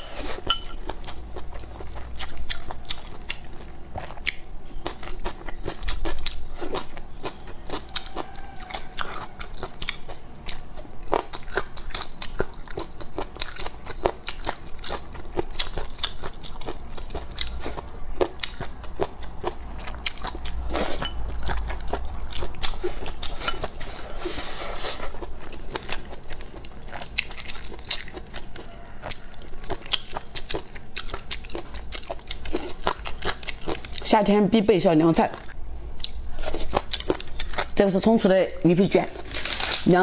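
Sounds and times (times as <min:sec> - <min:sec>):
close chewing with wet crunches: 0:00.7 - 0:34.1.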